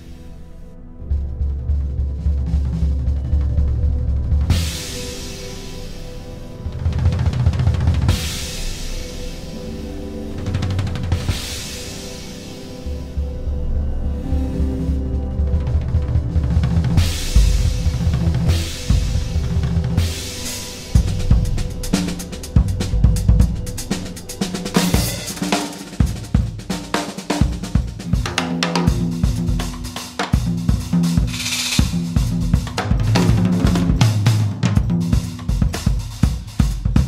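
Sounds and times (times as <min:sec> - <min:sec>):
jazz drum kit playing: 0:01.3 - 0:13.0, 0:14.6 - 0:37.0
cymbal crash: 0:17.0 - 0:36.8.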